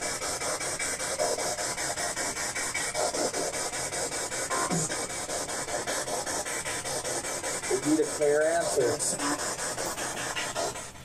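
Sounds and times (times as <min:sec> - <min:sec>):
pulsing radio static: 0:04.5 - 0:04.9, 0:07.7 - 0:09.4.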